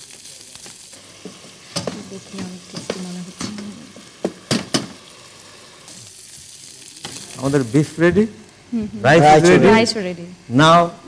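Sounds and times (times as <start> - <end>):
food sizzling in a frying pan: 0.0 - 10.9.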